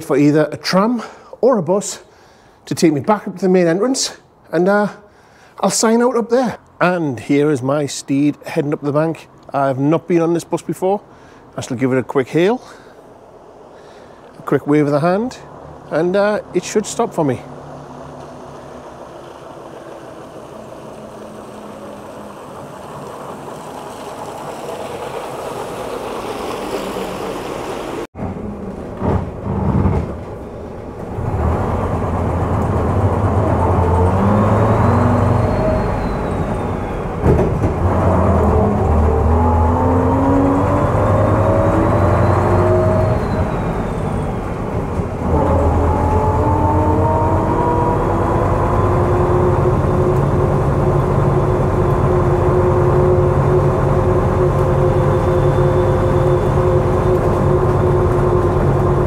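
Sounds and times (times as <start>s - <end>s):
bus engine accelerating: 8.1s - 59.0s.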